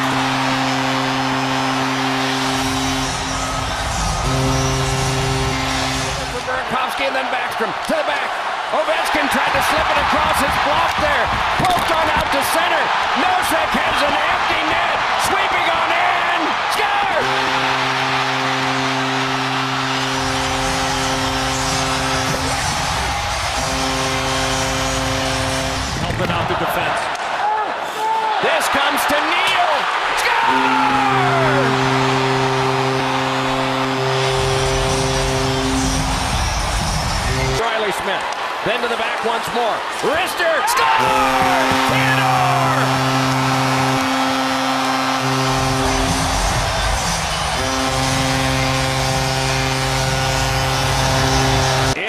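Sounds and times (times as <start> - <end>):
goal horn blasts: 0.0 - 7.0, 8.9 - 27.2, 28.7 - 37.7, 40.8 - 52.0
crowd cheering: 0.0 - 52.0.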